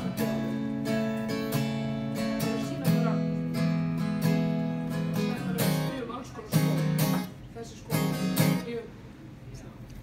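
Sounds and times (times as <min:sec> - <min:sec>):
acoustic guitar strummed chords: 0:00.0 - 0:08.8.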